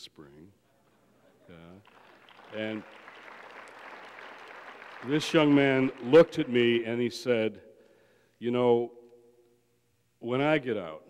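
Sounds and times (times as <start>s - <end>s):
audience applauding: 1.7s - 7.0s.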